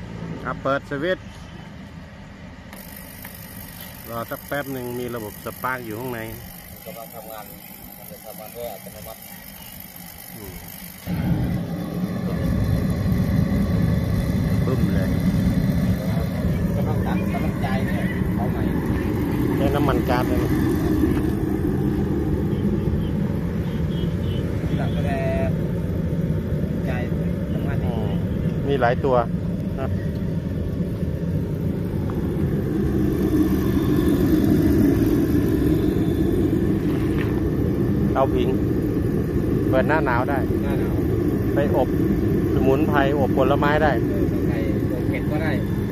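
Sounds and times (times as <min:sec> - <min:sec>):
burner flame and blower rumble: 0:00.0 - 0:45.9
heater hum: 0:00.0 - 0:45.9
heater spark ignition: 0:02.6 - 0:45.9.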